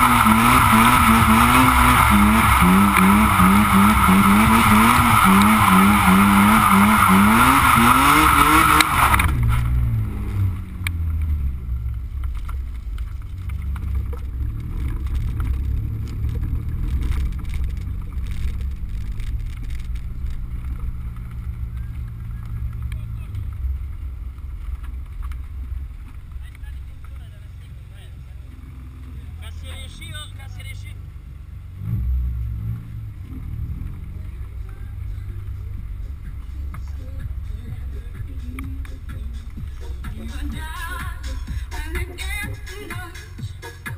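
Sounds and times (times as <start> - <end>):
car engine droning at low revs: 0.0 - 43.9.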